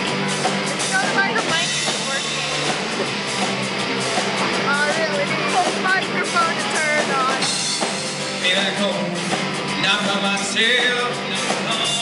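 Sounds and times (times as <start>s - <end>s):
live rock band playing: 0.0s - 12.0s
sliding lead melody: 0.0s - 12.0s.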